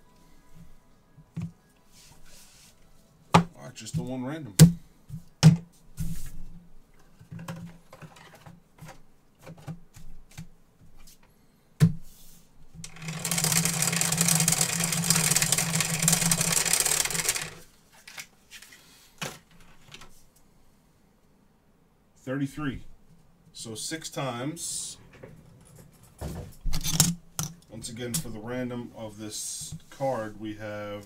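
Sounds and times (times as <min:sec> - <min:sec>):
dice rattling under plastic dome: 0:12.9 - 0:17.6.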